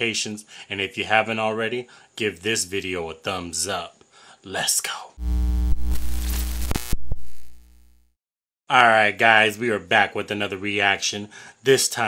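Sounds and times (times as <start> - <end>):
deep bass hum: 5.2 - 8.1
steady electronic tones: 5.2 - 8.1.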